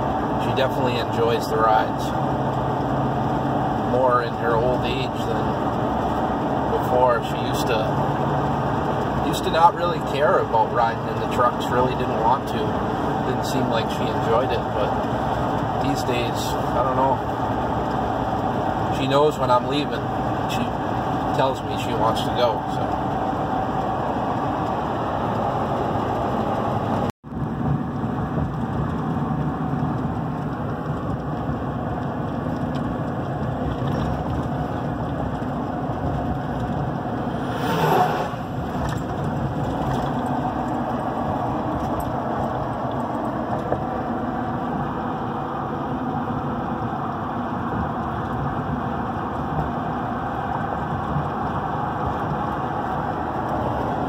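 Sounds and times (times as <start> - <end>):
truck engine and road noise: 0.0 - 54.0
whoosh: 37.1 - 39.2.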